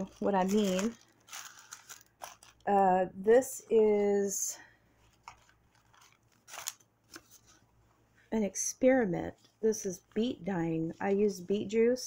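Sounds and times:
paper rustling: 0:00.0 - 0:02.7, 0:05.0 - 0:07.6.

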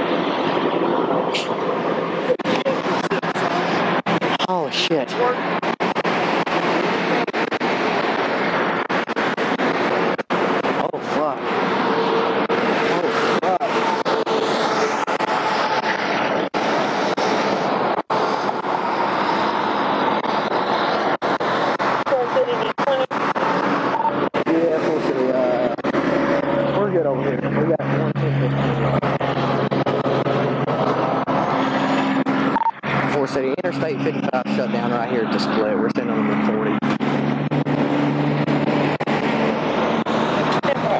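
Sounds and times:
steady rushing noise: 0:00.0 - 0:40.9
muffled voices: 0:01.3 - 0:05.4, 0:10.7 - 0:11.5, 0:12.8 - 0:14.1, 0:22.0 - 0:31.2, 0:33.0 - 0:37.2.

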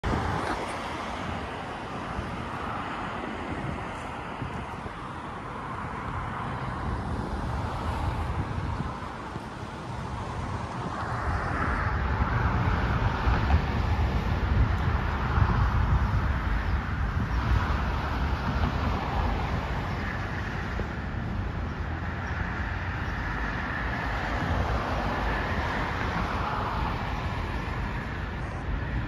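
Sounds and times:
road traffic rumble: 0:00.0 - 0:29.0.

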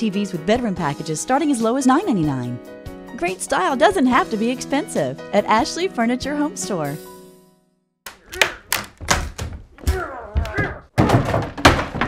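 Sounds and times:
man yelling: 0:09.8 - 0:10.9.

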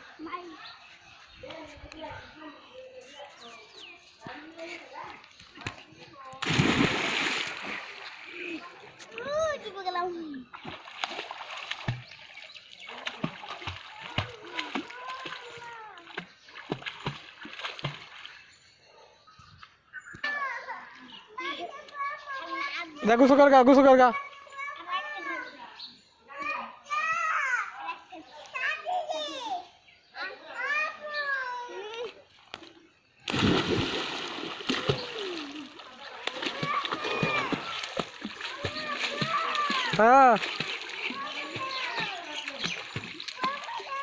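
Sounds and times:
swimming splashes: 0:04.2 - 0:18.5, 0:32.4 - 0:44.0.

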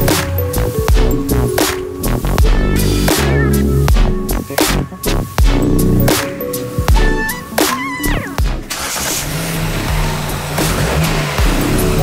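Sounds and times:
electronic music with bass: 0:00.0 - 0:08.9, 0:09.6 - 0:12.0
car engine running: 0:00.0 - 0:12.0.

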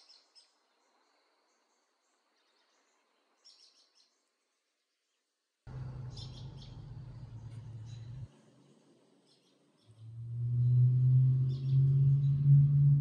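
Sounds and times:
low steady hum: 0:05.7 - 0:08.9, 0:09.9 - 0:13.0
birds chirping: 0:05.7 - 0:13.0.

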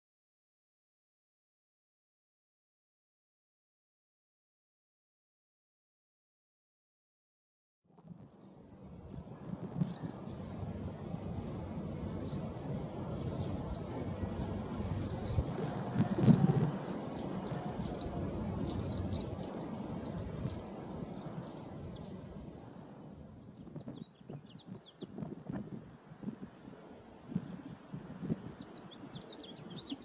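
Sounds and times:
swallows alarm chirps: 0:08.0 - 0:08.7, 0:09.8 - 0:22.7, 0:23.3 - 0:25.1, 0:28.5 - 0:30.0
low background rumble: 0:08.2 - 0:26.6.

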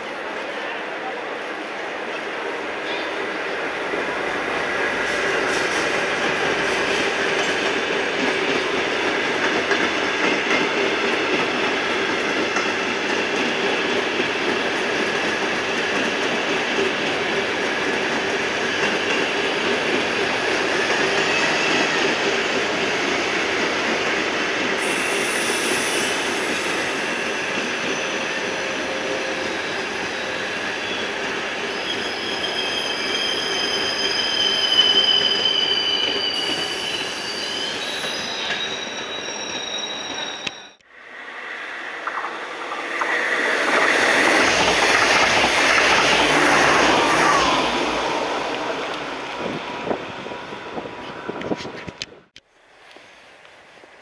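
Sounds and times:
train wheels rumbling on rails: 0:02.2 - 0:39.3, 0:40.8 - 0:52.4
train wheels squealing: 0:18.4 - 0:19.9, 0:20.5 - 0:22.4, 0:24.8 - 0:40.8.

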